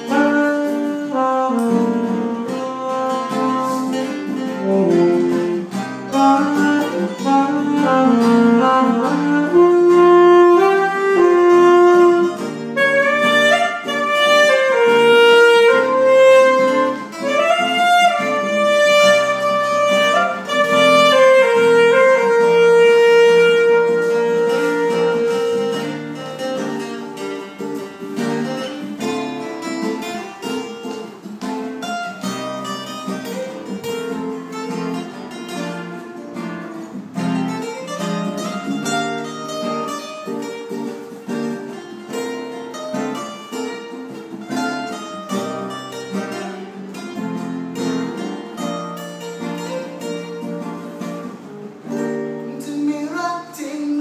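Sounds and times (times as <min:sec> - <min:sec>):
alto saxophone long note: 0:00.0 - 0:26.0
acoustic guitars picking and strumming: 0:00.0 - 0:54.0.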